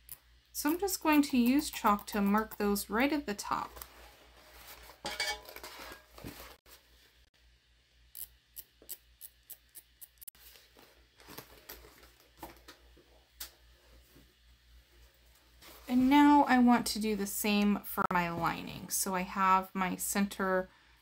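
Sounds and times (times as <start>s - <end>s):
chalk marker ticking and scratching: 0.6s - 2.8s.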